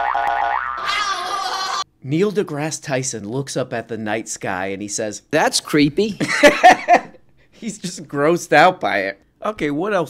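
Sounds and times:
comic high-pitched wavering tone: 0.0 - 1.8.

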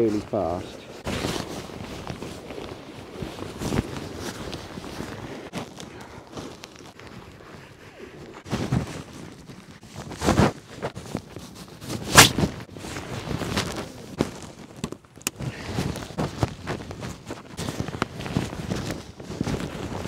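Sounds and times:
tent fabric rustling: 0.0 - 20.0.

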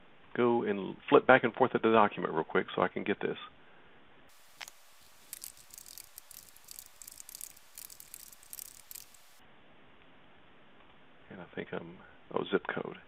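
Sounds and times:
light hiss: 4.3 - 9.4
keyboard typing: 4.6 - 9.4.

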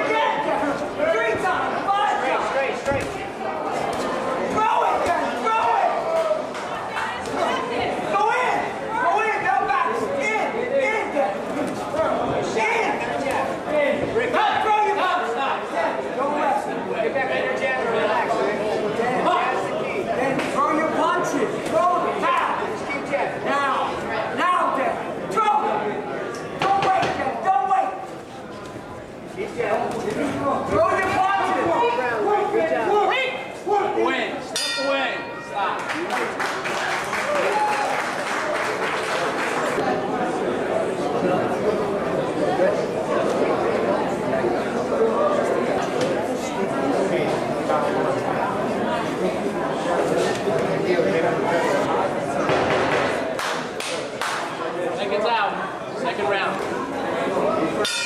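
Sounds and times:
people talking and calling out: 0.0 - 58.0.

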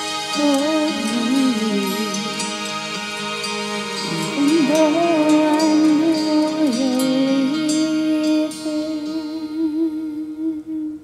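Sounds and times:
faint ringing chord: 0.0 - 10.6
person humming with vibrato: 0.4 - 2.6, 4.0 - 11.0.

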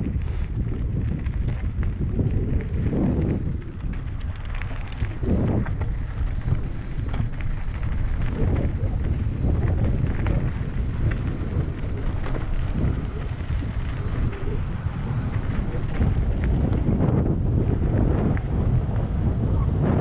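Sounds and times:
bike rattling clicks: 0.0 - 17.3
wind buffeting microphone: 0.0 - 20.0.

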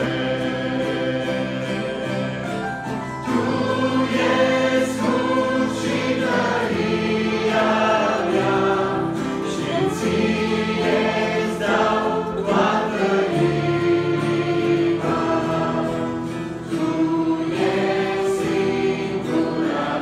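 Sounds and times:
instrumental accompaniment: 0.0 - 20.0
youth choir singing a hymn: 0.0 - 20.0.

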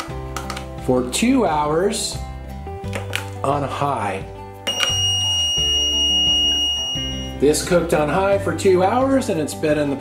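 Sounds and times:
background music: 0.0 - 10.0
high-pitched electronic beep: 4.7 - 7.5.

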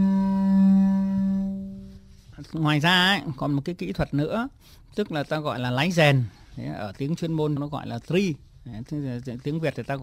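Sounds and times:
double bass bowed harmonic: 0.0 - 2.3.

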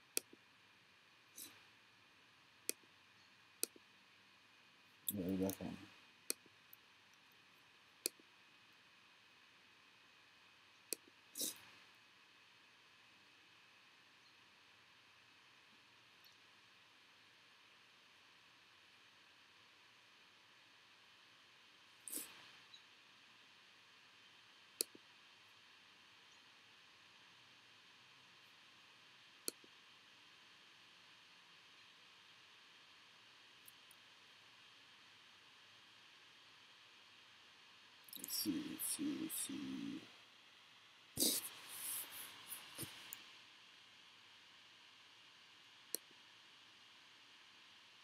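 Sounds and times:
faint steady hiss: 0.0 - 48.0
computer mouse clicks: 3.6 - 3.9, 10.9 - 11.7, 24.8 - 25.0, 29.4 - 29.7, 45.9 - 46.1.

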